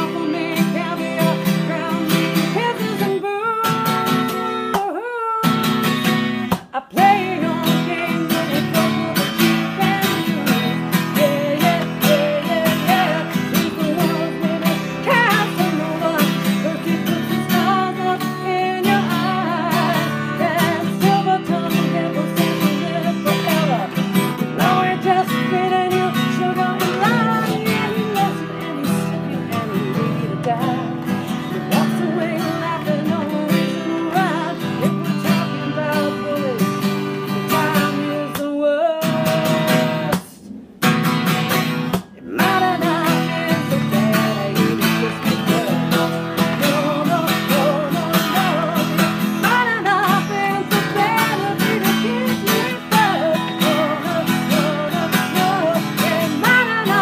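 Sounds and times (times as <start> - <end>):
acoustic guitar strumming: 0.0 - 57.0
woman singing: 0.0 - 57.0.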